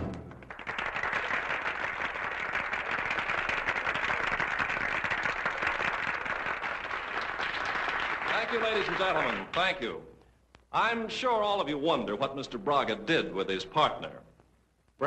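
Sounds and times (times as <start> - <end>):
audience applauding: 0.0 - 9.8.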